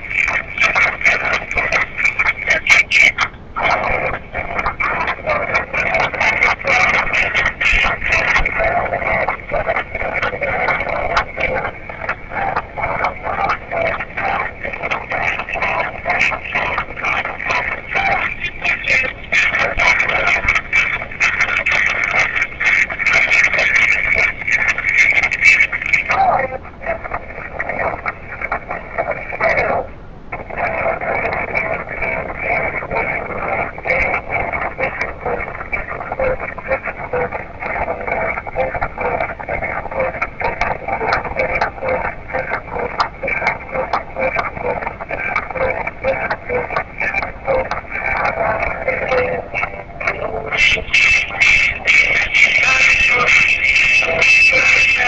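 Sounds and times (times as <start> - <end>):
tinny voices through small speaker: 0.0 - 55.0.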